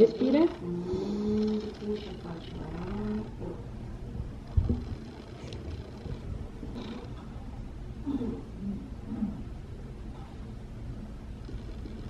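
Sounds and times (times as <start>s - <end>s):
woman moaning muffled: 8.0s - 9.5s.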